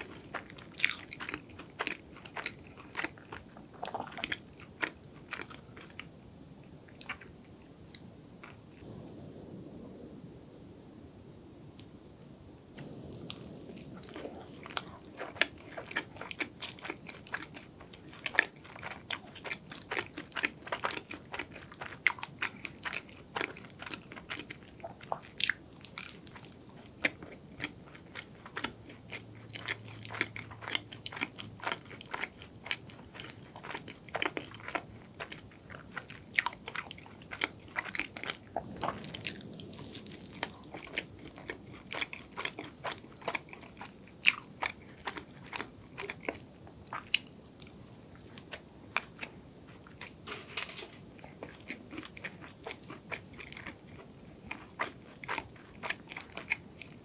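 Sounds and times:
crunchy chewing of crisp pastry: 0.0 - 8.9, 12.8 - 57.0.

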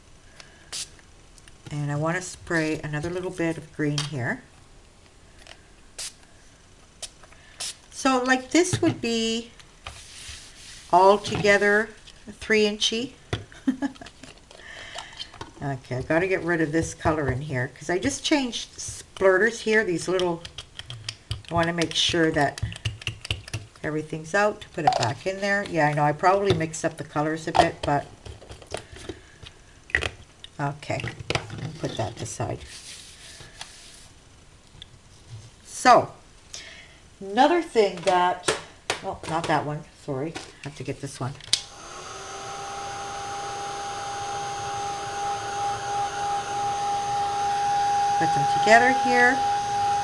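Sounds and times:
faint hiss-like handling noises: 9.6 - 12.2, 32.6 - 35.7
hands tapping and rustling craft items: 13.3 - 23.9, 37.9 - 40.7.

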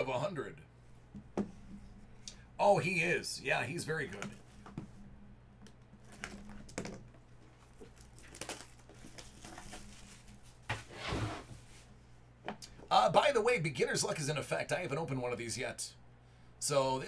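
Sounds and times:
plastic wrap crinkling and tearing: 7.4 - 10.7
plastic wrap ripping: 7.6 - 10.6.

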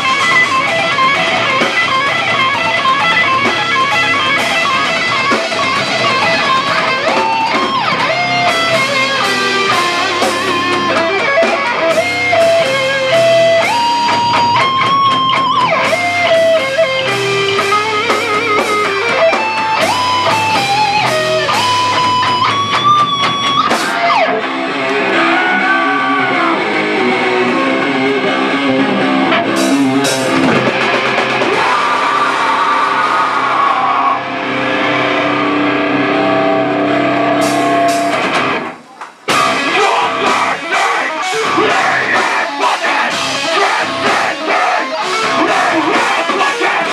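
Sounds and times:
heavy metal band playing: 0.0 - 46.9.

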